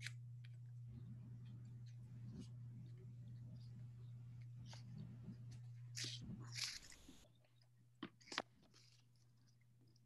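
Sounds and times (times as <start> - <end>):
faint low hum: 0.0 - 10.0
paper rustling: 4.6 - 7.3.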